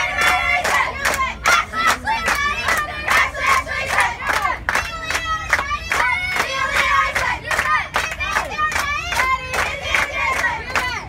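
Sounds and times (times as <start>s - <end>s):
girls chanting a cheer: 0.0s - 11.0s
steady clapping: 0.0s - 11.0s.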